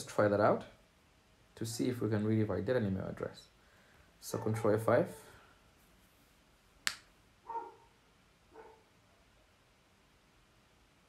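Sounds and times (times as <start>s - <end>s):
faint dog barks: 4.2s - 5.3s, 7.4s - 9.5s.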